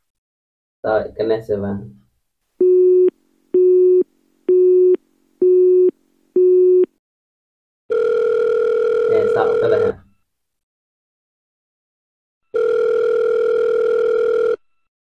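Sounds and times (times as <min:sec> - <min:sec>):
phone call beeps: 0:02.6 - 0:06.9, 0:07.9 - 0:10.2, 0:12.5 - 0:14.6
continuous phone tone: 0:02.6 - 0:07.0, 0:07.9 - 0:10.2, 0:12.5 - 0:14.9.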